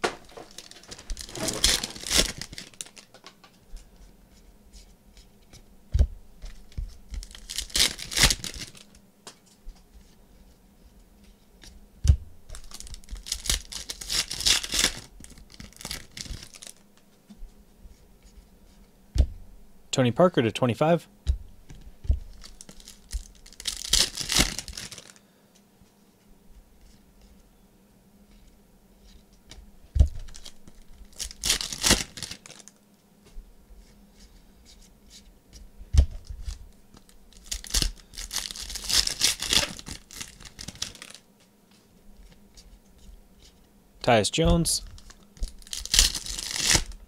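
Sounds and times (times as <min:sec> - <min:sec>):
foil pack tearing and crinkling: 0:00.0 - 0:03.2, 0:06.6 - 0:09.0, 0:12.5 - 0:16.8, 0:22.2 - 0:25.2, 0:30.2 - 0:32.8, 0:36.4 - 0:41.2, 0:44.9 - 0:47.0.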